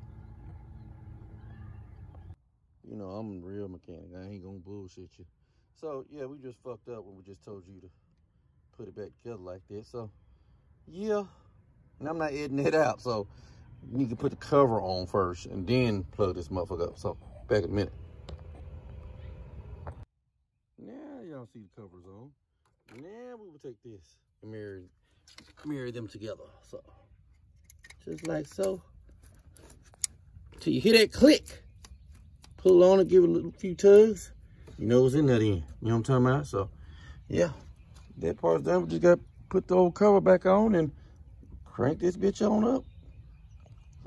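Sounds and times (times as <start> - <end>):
low background rumble: 0.0 - 2.8, 15.1 - 20.1
faint low hum: 0.0 - 20.1.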